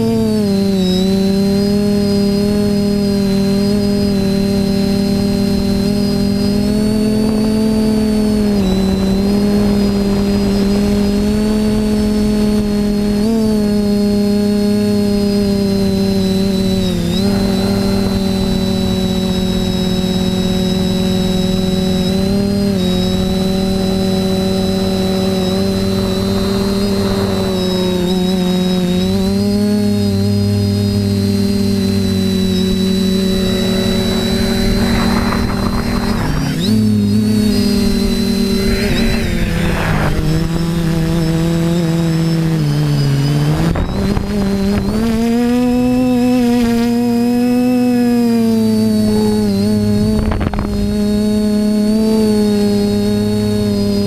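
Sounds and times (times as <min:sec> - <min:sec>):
quadcopter motors droning: 0:00.0 - 0:54.0.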